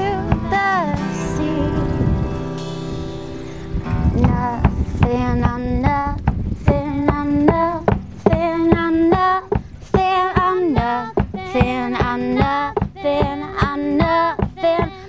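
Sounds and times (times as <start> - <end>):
sliding high vocal melody: 6.7 - 15.0.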